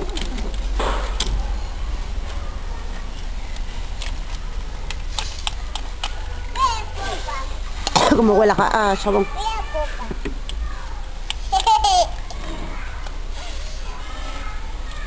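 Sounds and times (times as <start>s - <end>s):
young children's voices: 1.4s - 4.9s, 5.6s - 15.0s.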